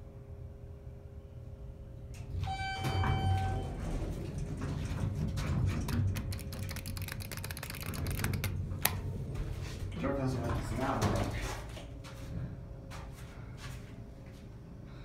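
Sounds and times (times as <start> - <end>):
elevator hum: 0.0 - 15.0
low rumble with clicking and rattling: 1.1 - 14.6
electronic tone: 2.4 - 3.8.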